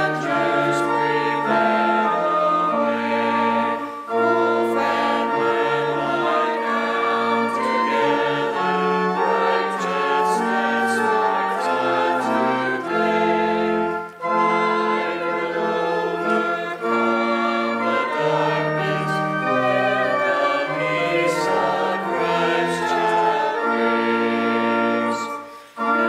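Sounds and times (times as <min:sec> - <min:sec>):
group singing a hymn: 0:00.0 - 0:26.0
organ: 0:00.0 - 0:26.0.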